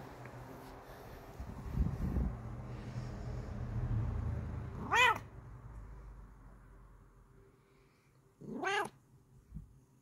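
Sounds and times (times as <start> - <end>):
cat meowing: 4.7 - 5.3, 8.4 - 9.0.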